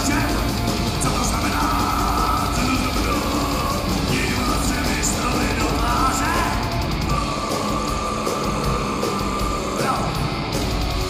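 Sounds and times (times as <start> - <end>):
black metal band playing live: 0.0 - 11.0.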